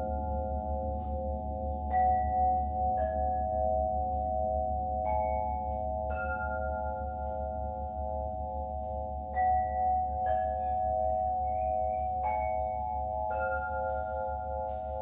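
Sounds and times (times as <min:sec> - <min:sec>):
ringing metal percussion tones: 0:00.0 - 0:15.0
struck bell-like tones: 0:00.0 - 0:15.0.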